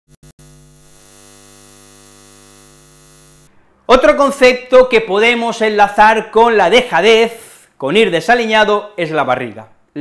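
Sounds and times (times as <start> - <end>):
neon sign electrical buzz: 0.1 - 3.6.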